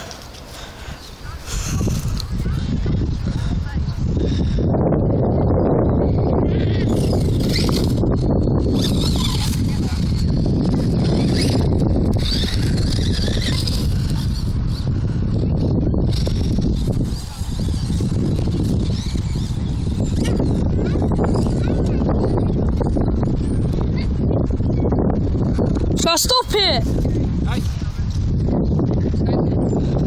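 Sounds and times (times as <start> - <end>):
wind buffeting microphone: 0.0 - 30.0
rc car motor whine: 6.2 - 23.8.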